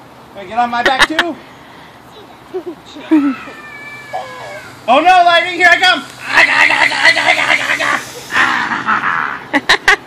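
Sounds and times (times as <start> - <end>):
child squeaking: 3.0 - 4.9.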